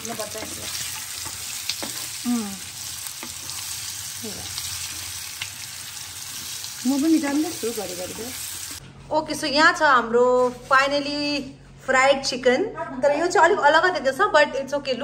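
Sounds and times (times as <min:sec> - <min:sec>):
meat sizzling in hot oil: 0:00.0 - 0:08.8.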